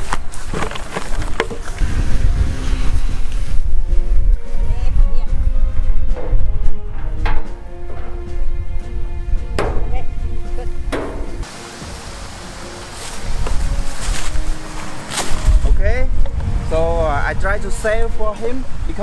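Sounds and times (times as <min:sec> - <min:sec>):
background music with held tones: 0:01.6 - 0:18.7
sharp knocks: 0:09.6 - 0:10.0, 0:10.9 - 0:11.4
man talking: 0:15.6 - 0:19.0.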